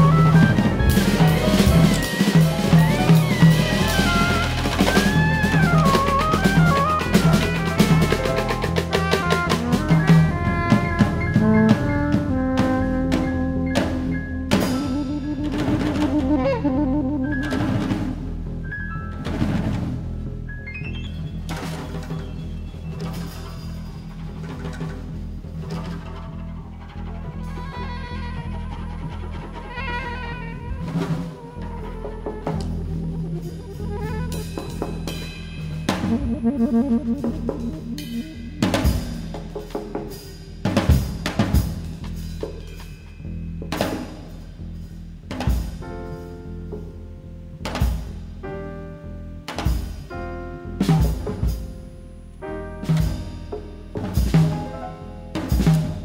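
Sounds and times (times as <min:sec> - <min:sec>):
soprano saxophone melody: 0:00.0 - 0:18.0, 0:27.4 - 0:35.0, 0:36.0 - 0:39.0
drum kit playing busy strokes: 0:00.0 - 0:20.5, 0:27.3 - 0:48.7, 0:49.5 - 0:56.0
upright bass line: 0:00.0 - 0:21.7, 0:27.2 - 0:40.1
piano: 0:00.0 - 0:56.0.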